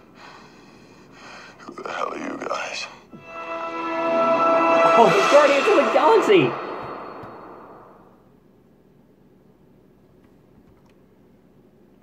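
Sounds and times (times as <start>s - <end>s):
film trailer soundtrack: 3.2s - 8.2s.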